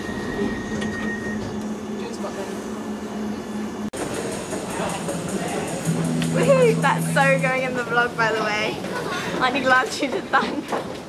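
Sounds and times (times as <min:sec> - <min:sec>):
underground train rumbling and rattling: 0:00.0 - 0:11.0.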